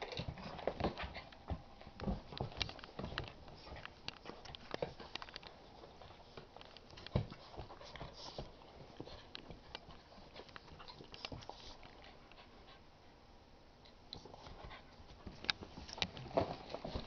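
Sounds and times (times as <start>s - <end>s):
puppies scuffling: 0.0s - 12.3s, 14.2s - 17.0s
dogs panting: 0.1s - 13.0s.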